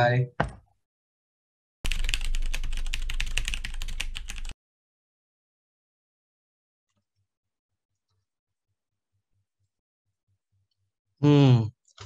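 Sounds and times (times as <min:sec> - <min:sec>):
typing on computer keyboard: 0:01.9 - 0:04.6.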